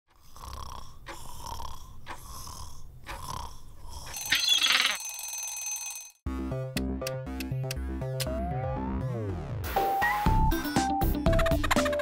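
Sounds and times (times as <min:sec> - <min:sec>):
timer alarm bell ringing: 0:04.1 - 0:06.2.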